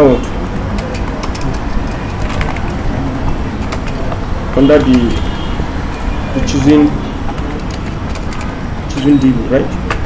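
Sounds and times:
computer keyboard typing: 0:00.3 - 0:09.2.

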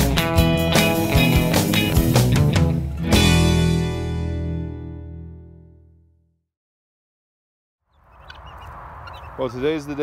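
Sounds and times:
guinea fowl chirping: 0:07.9 - 0:10.0.

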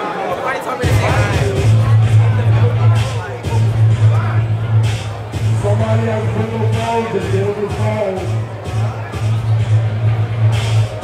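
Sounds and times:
loud music over sound system: 0:00.4 - 0:11.0.

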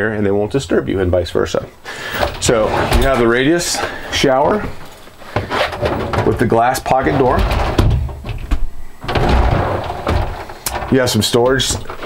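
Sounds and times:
shower door rolling on track: 0:02.2 - 0:04.7, 0:05.4 - 0:12.0.

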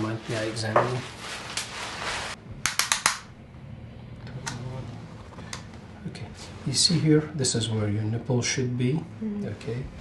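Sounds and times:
paper gown rustling and crinkling: 0:00.0 - 0:02.4
sharp snaps: 0:02.6 - 0:03.3.

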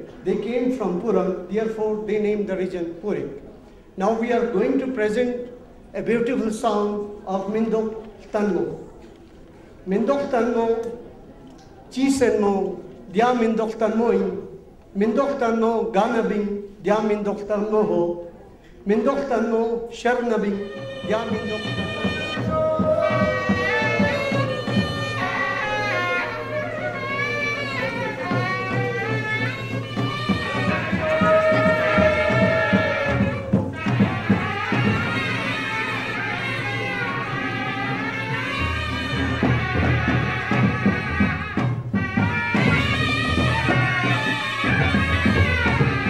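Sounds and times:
folk dance music: 0:20.1 - 0:46.0
drum beats: 0:20.4 - 0:46.0.

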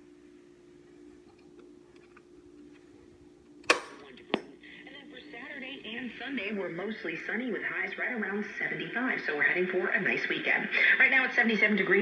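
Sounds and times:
low hum: 0:00.0 - 0:11.2
tinny radio speech: 0:04.0 - 0:12.0.

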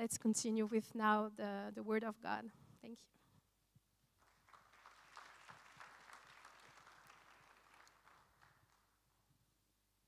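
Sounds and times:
faint applause: 0:04.2 - 0:09.2.

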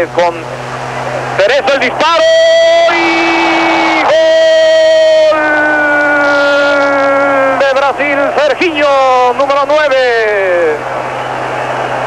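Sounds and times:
football commentary: 0:00.0 - 0:12.0
commentator's long goal cry: 0:02.2 - 0:07.8.

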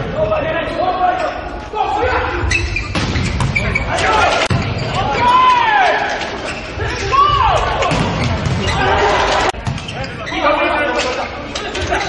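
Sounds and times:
voices and crowd in hall: 0:00.0 - 0:12.0.

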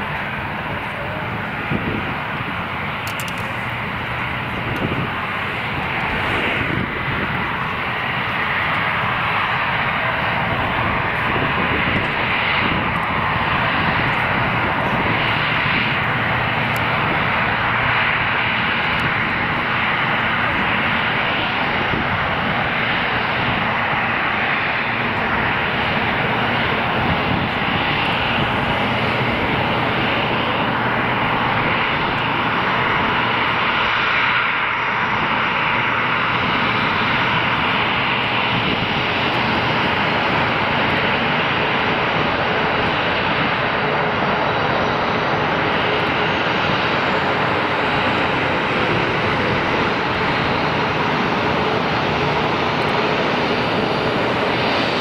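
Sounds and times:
jet engines running: 0:00.0 - 0:55.0.

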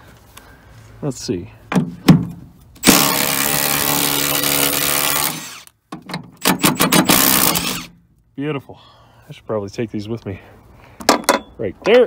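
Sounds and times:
impact driver running: 0:02.8 - 0:05.7, 0:06.4 - 0:07.9.

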